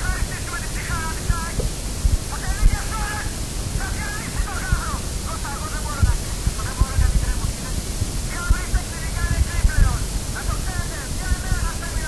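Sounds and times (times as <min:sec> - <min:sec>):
static hiss: 0:00.0 - 0:12.0
faint voice: 0:02.3 - 0:12.0.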